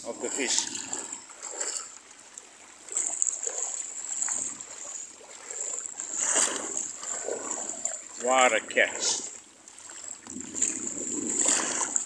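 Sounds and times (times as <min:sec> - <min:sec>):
seawater sloshing and splashing: 0:00.0 - 0:12.0.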